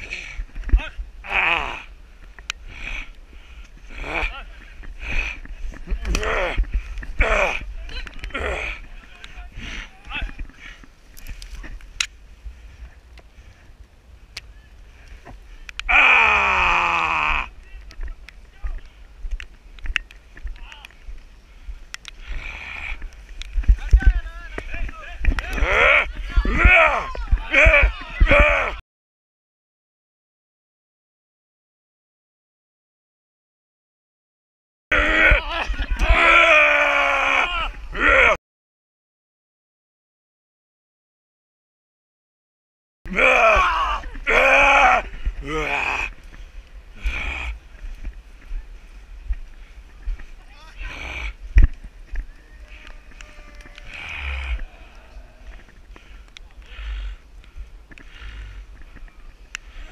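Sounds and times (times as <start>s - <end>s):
person yelling: 24.8s - 28.8s, 34.9s - 38.4s, 43.1s - 46.1s.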